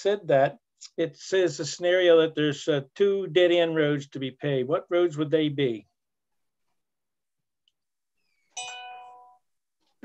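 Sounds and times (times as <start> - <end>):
chime tone: 8.6 - 9.4.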